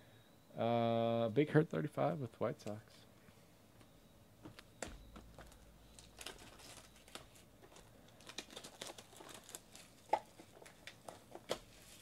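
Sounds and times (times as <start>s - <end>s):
shrink wrap crinkling: 5.2s - 12.0s.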